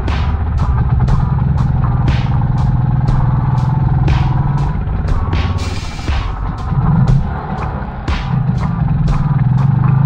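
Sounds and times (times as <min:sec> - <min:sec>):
background music with steady beat: 0:00.0 - 0:10.0
dirt bike engine under throttle: 0:00.0 - 0:10.0.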